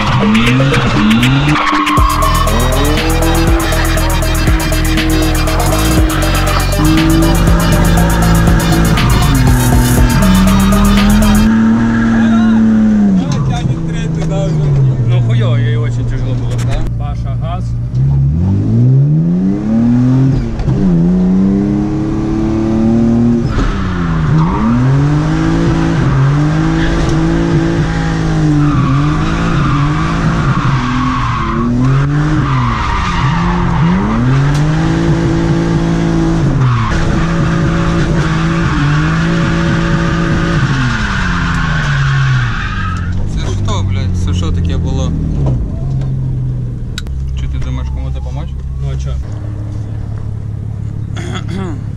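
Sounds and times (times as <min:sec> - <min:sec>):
car engine revving: 0:00.0 - 0:51.9.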